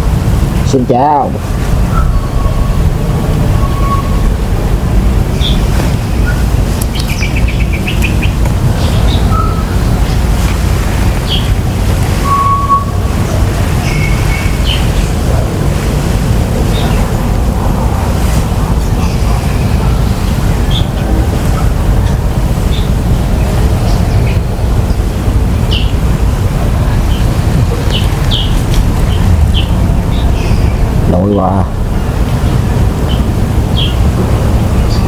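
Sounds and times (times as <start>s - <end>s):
birds chirping: 0.0s - 35.0s
wind rumble on microphone: 0.0s - 35.0s.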